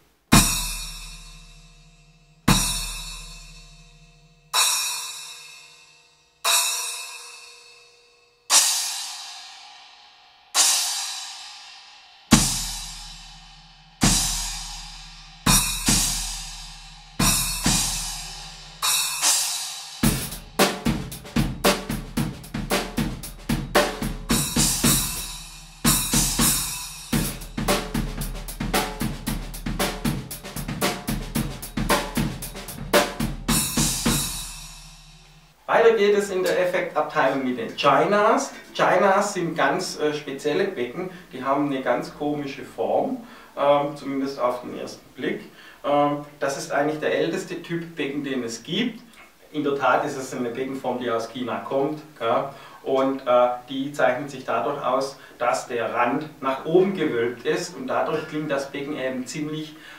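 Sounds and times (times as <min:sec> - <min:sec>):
drum kit playing a busy groove: 0:00.3 - 0:01.8, 0:02.4 - 0:03.9, 0:08.5 - 0:09.2, 0:12.3 - 0:35.3
splash cymbal hits: 0:00.3 - 0:35.6
bass drum hits: 0:20.0 - 0:34.7.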